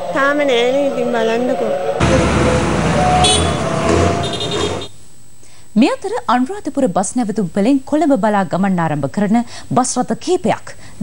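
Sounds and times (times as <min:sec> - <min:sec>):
bus engines rumbling: 0:00.0 - 0:04.9.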